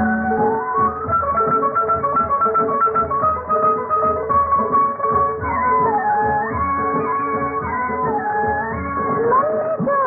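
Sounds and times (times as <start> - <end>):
bowed strings melody: 0.0 - 10.0
plucked-string accompaniment: 0.0 - 10.0.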